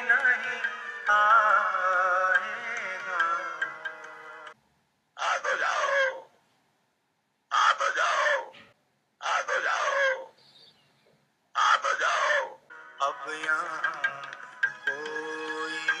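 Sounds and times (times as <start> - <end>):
song with music: 0.0 - 4.6, 12.7 - 16.0.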